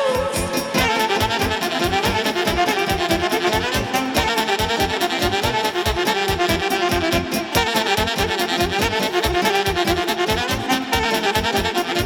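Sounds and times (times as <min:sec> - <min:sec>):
drum and bass beat: 0:00.0 - 0:12.0
saxophones playing dance melody: 0:00.0 - 0:12.0.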